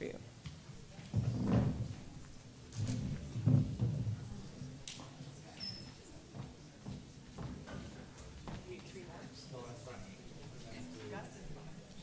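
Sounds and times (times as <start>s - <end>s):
murmur of voices: 0.0s - 12.0s
chairs set down on stage floor: 1.0s - 4.5s.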